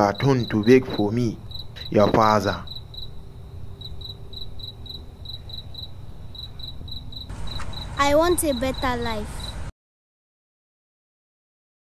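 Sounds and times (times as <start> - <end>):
crickets chirping: 0.0 - 9.7.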